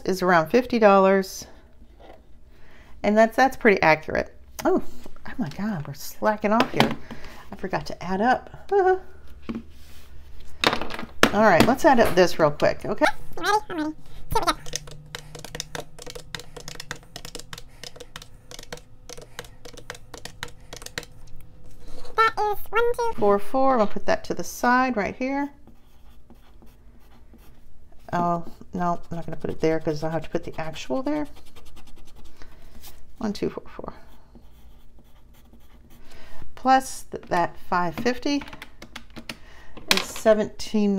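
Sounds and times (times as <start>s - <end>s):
calculator keys clicking: 14.4s - 21.5s
pencil scratching on paper: 14.4s - 22.2s, 25.6s - 32.3s, 34.0s - 36.0s.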